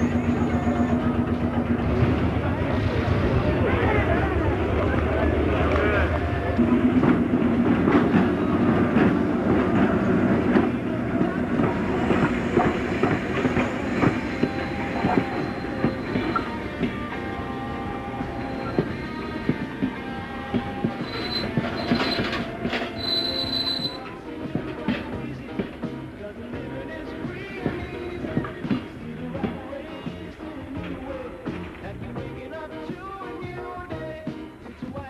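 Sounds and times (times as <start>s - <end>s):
wheel flanges squealing: 0.0s - 1.4s, 11.9s - 16.6s, 20.9s - 24.1s
train wheels clicking over rails: 0.0s - 17.4s, 18.0s - 26.0s.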